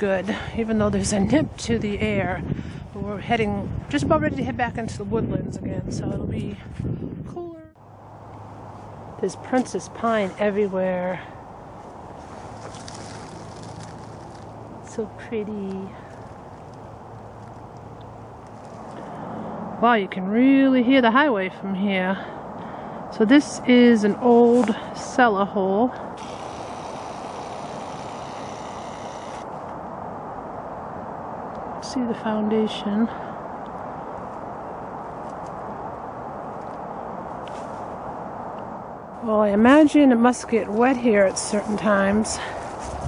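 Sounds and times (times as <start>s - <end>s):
distant highway traffic hum: 0.0s - 43.0s
dry leaves crackling underfoot: 11.5s - 19.1s, 40.4s - 43.0s.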